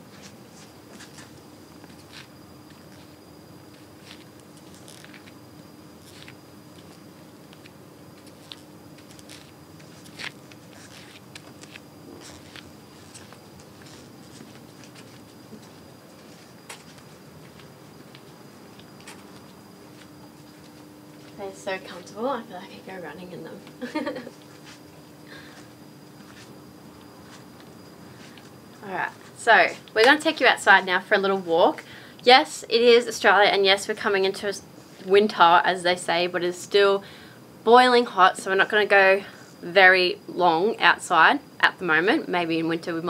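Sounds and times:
high heel footsteps on carpet: 0:06.0 - 0:21.4.

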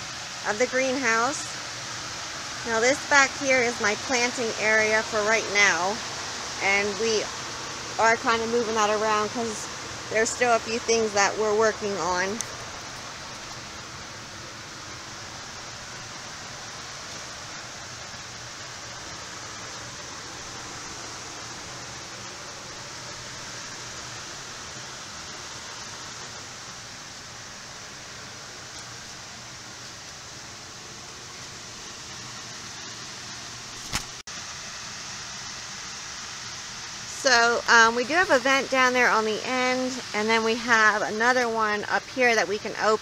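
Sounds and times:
electric fan rushing air: 0:00.0 - 0:43.0
single click: 0:33.8 - 0:34.2.

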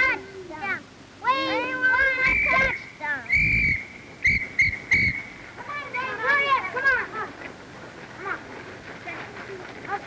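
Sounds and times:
whistle blasts: 0:02.1 - 0:05.4.

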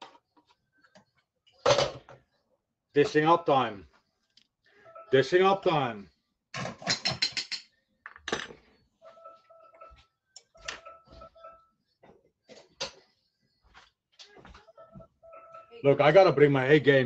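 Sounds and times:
utensils clinking on pans: 0:06.6 - 0:10.0, 0:10.6 - 0:11.6.

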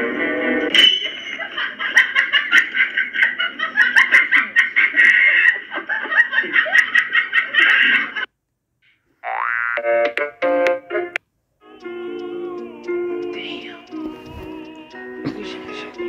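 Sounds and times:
high-pitched laughter: 0:01.1 - 0:08.3.

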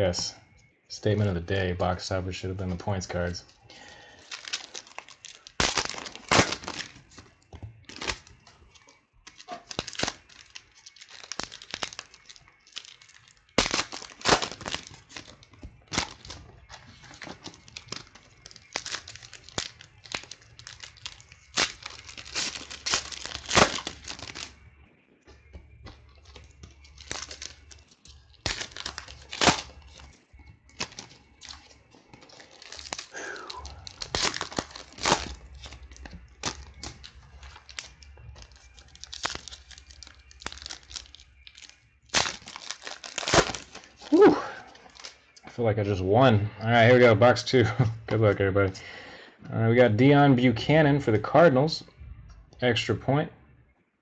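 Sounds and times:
cards being handled: 0:02.8 - 0:24.6, 0:25.3 - 0:45.5
foil wrappers tearing and crinkling: 0:02.9 - 0:24.7, 0:25.4 - 0:45.5.

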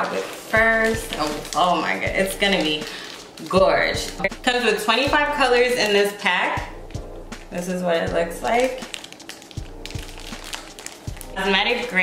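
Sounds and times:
plastic bags crinkling: 0:00.0 - 0:04.3, 0:08.4 - 0:12.0
quiet background music: 0:00.0 - 0:12.0.

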